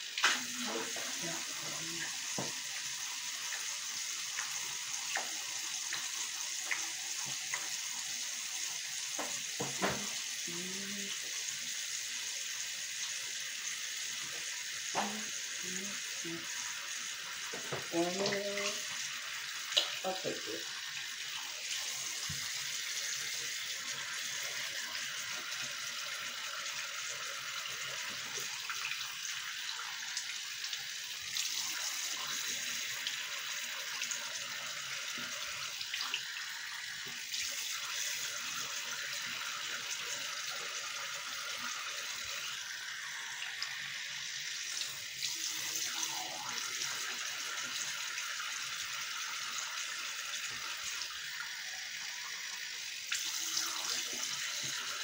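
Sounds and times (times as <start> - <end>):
sink tap running: 0.0 - 55.0.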